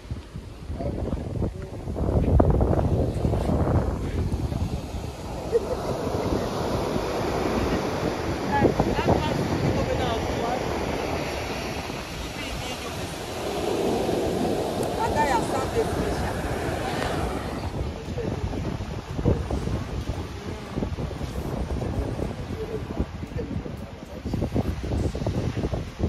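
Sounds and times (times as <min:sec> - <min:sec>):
ocean surf breaking: 0:00.0 - 0:25.9
wind buffeting microphone: 0:00.0 - 0:26.0.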